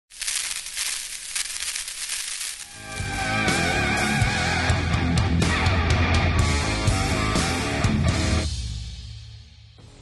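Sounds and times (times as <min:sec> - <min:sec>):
crackling hiss: 0:00.0 - 0:03.6.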